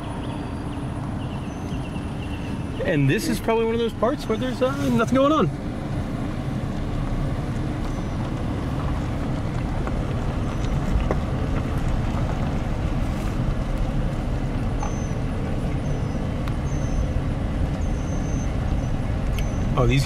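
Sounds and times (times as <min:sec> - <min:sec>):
car engine and tyres rumbling: 0:00.0 - 0:20.0.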